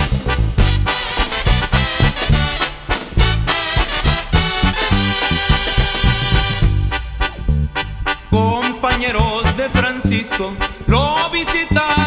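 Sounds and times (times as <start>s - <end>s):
bass beat: 0.0s - 12.0s
brass band playing: 0.0s - 12.0s.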